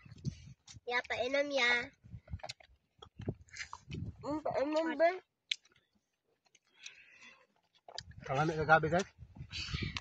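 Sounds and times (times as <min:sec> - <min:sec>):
people chewing: 0:01.9 - 0:10.0.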